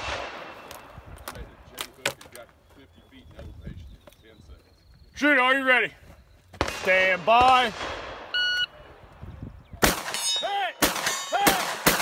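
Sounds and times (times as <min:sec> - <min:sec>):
gunshots echoing: 0:00.0 - 0:00.9, 0:06.6 - 0:08.4, 0:09.8 - 0:12.0.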